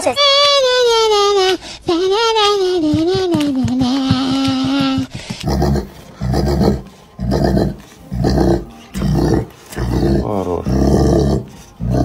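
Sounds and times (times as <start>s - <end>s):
dog low rumbling growls: 5.4s - 12.0s.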